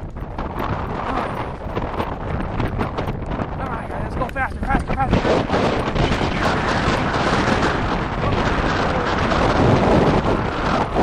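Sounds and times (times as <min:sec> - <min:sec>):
bicycle knocks and rattles: 0:00.0 - 0:11.0
wind buffeting microphone: 0:00.0 - 0:11.0.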